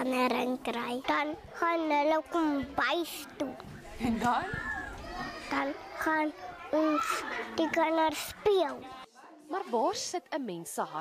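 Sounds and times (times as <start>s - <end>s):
young child speaking: 0.0s - 3.6s, 5.0s - 9.0s.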